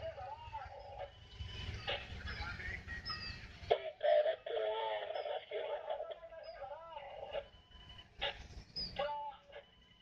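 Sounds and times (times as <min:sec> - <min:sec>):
wavering loudspeaker voice announcement: 0:00.0 - 0:01.1, 0:01.7 - 0:07.5, 0:09.0 - 0:09.6.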